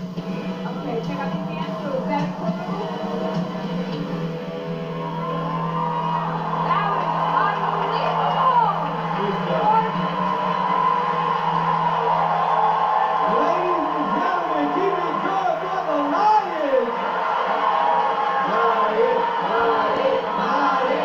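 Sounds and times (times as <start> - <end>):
audience cheering and applauding: 0.0 - 21.0
show music: 0.0 - 21.0
whoops: 5.0 - 9.1, 10.0 - 15.4.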